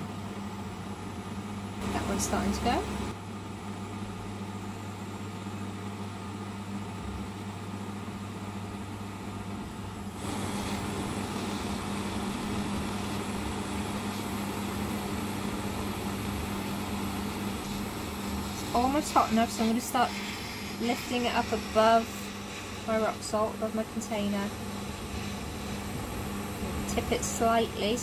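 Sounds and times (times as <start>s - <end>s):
extractor fan hum: 0.0s - 28.0s
butane torch hissing: 9.7s - 28.0s.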